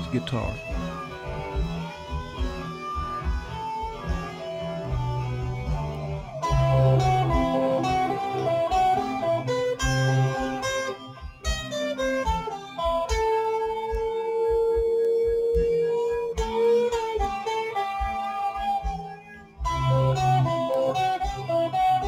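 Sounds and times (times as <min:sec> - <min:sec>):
backing track music: 0:00.0 - 0:22.0
electric guitar melody: 0:00.0 - 0:22.0.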